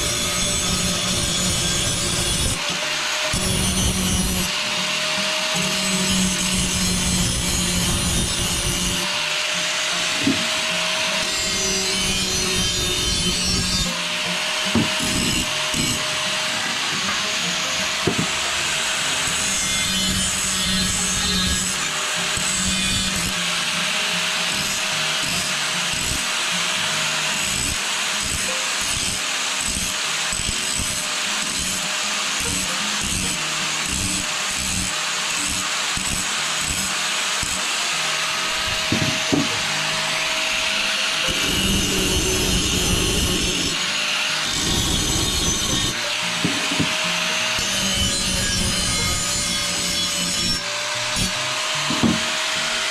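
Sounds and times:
angle grinder grinding metal: 0.0s - 52.9s.

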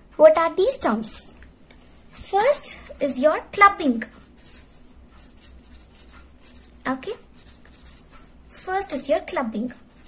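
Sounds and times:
marker scratching on paper: 2.1s - 3.2s, 3.9s - 10.0s.

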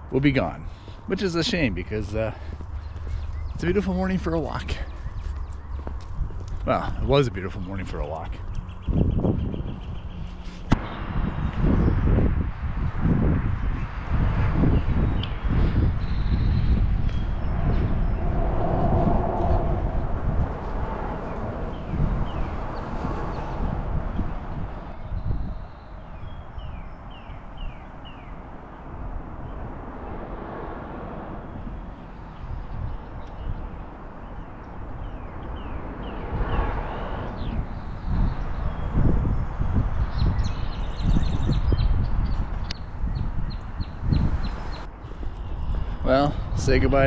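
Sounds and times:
outdoor background rumble: 0.0s - 46.9s
bird chirping: 0.4s - 12.2s, 24.5s - 28.4s, 31.6s - 46.5s.

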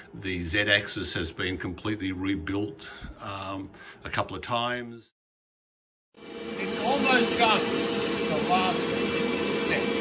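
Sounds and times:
router milling metal: 6.2s - 10.0s.

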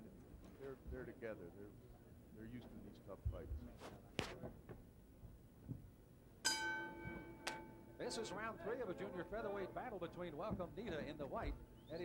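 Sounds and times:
faint arena noise: 0.0s - 5.0s, 6.5s - 12.0s
boxing ring bell ringing: 6.4s - 8.2s.

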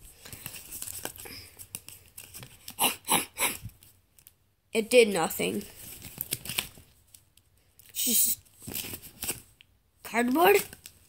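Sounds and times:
rustling and clicks of handling: 0.0s - 2.8s, 3.7s - 4.4s.

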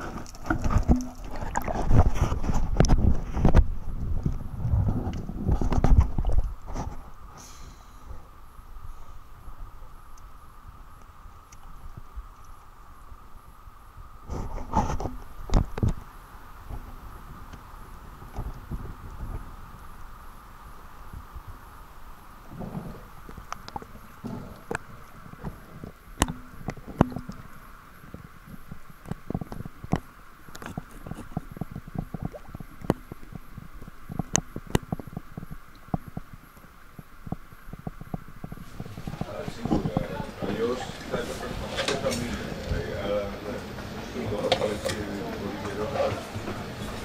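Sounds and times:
underwater clicks and knocks: 0.0s - 7.2s, 14.3s - 16.1s, 22.8s - 40.6s
muffled underwater hum: 0.0s - 47.0s.

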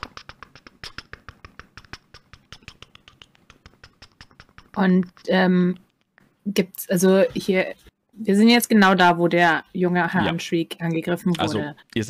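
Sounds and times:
typing on computer keyboard: 0.0s - 6.0s.

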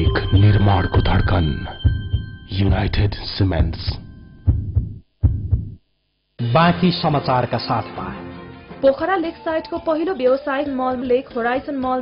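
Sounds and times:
heartbeat thumps: 0.0s - 5.8s.

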